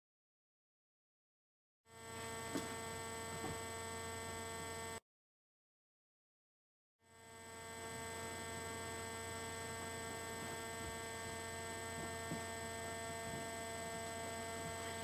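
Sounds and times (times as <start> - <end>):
electrical hum with high tones: 1.9 - 5.0, 7.0 - 15.0.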